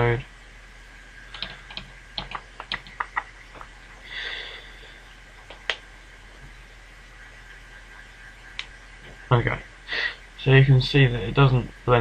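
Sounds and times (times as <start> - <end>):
faint steady hum: 0.0 - 12.0
keyboard keys clicking: 1.3 - 3.6.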